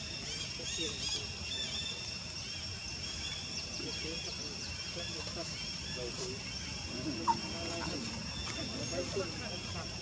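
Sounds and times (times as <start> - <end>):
macaque gliding calls: 5.0 - 10.0.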